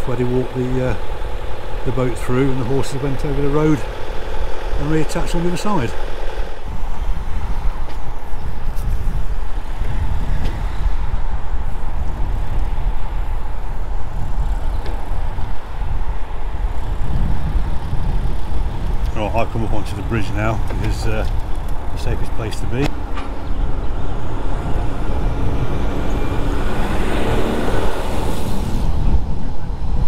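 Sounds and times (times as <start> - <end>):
low rumble of cars: 0.0 - 30.0.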